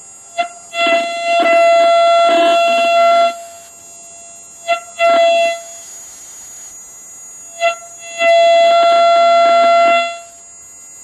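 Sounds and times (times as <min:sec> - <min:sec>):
receiver hiss: 0:00.0 - 0:11.0
buzzy radio tone keyed on and off: 0:00.4 - 0:06.8.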